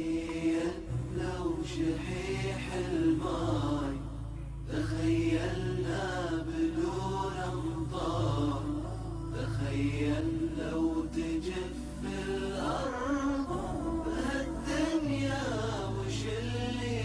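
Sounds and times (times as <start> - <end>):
low steady drone: 0.0 - 17.0.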